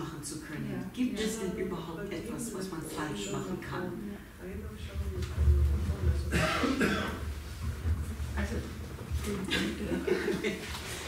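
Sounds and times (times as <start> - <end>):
person coughing: 6.3 - 7.3.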